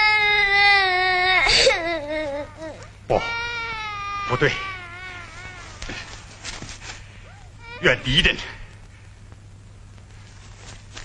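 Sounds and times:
child crying: 0.0s - 5.9s, 7.3s - 8.2s.

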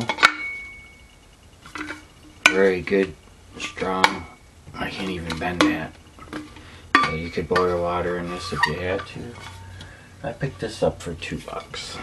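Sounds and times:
metal water bottle clanking: 1.7s - 2.8s, 5.0s - 9.7s.

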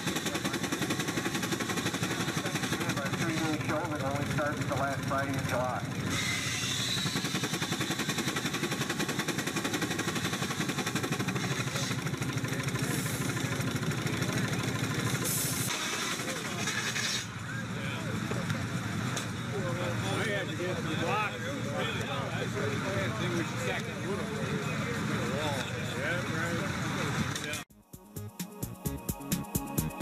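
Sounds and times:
voices: 0.0s - 6.1s, 11.3s - 27.6s
steam traction engine beat: 0.0s - 17.0s, 27.7s - 30.0s.

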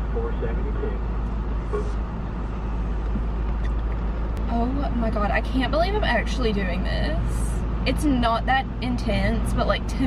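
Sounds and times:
car idling rumble: 0.0s - 10.0s.

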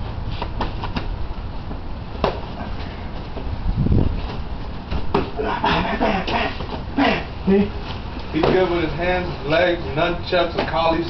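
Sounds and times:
steady low rumble: 0.0s - 10.3s.

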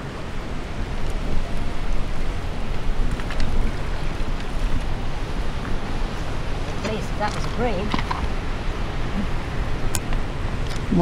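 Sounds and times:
harbour water wash: 0.0s - 11.0s
wind buffeting microphone: 0.0s - 11.0s.

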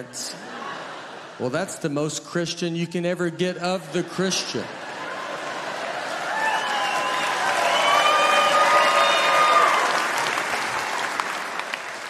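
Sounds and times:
audience cheering: 4.7s - 12.0s
audience applauding: 4.8s - 12.0s.

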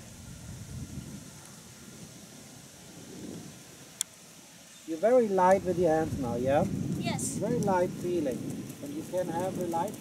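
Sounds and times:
wind rumble on microphone: 0.0s - 4.0s, 5.0s - 10.0s.

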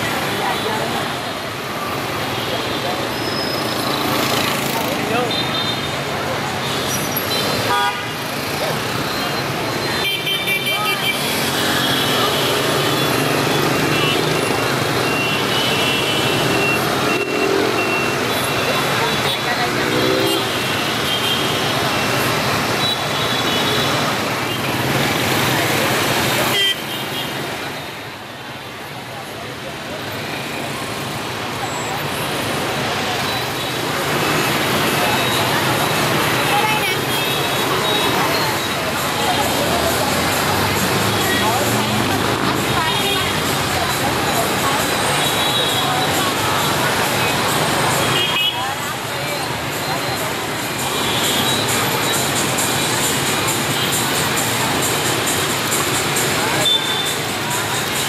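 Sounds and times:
motorbikes and scooters traffic: 0.0s - 58.0s
people's voices: 0.0s - 58.0s
horns tooting: 1.9s - 28.0s, 49.9s - 58.0s.

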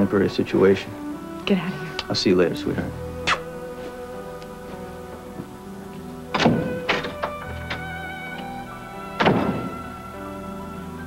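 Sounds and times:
soft background music: 0.0s - 11.0s
door latch clicks: 6.3s - 7.9s, 9.2s - 9.7s
door thudding shut: 6.3s - 7.9s, 9.2s - 9.9s.

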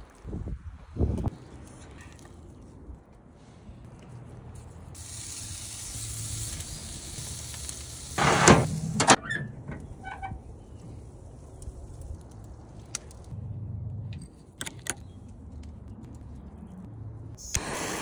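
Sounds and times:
steak sizzling on grill: 5.0s - 8.9s.

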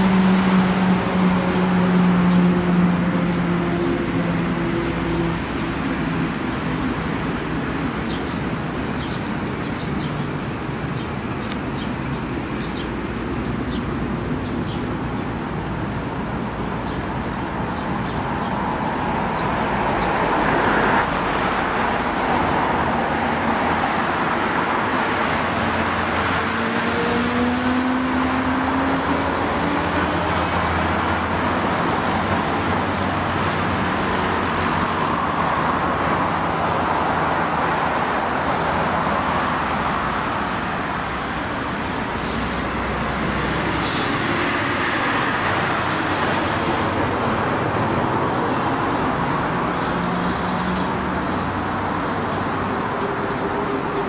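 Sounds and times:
cars passing on road: 0.0s - 54.0s.

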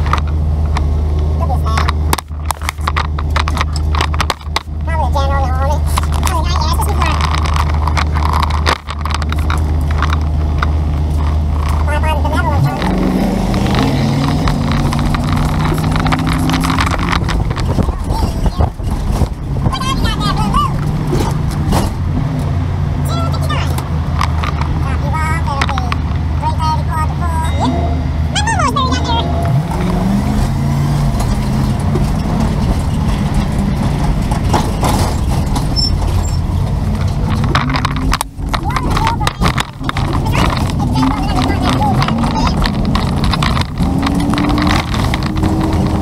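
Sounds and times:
vehicle engine idling and accelerating: 0.0s - 46.0s
voices talking: 4.8s - 8.3s, 11.7s - 21.5s, 23.0s - 24.0s, 24.6s - 30.4s, 38.4s - 44.8s.

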